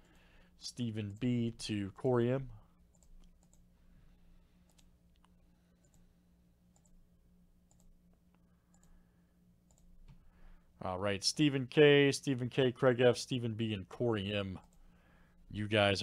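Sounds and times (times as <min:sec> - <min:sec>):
low electrical hum: 0:00.0 - 0:16.0
computer mouse clicks: 0:02.9 - 0:03.6, 0:04.6 - 0:06.0, 0:06.7 - 0:07.0, 0:07.7 - 0:07.9, 0:09.7 - 0:10.2.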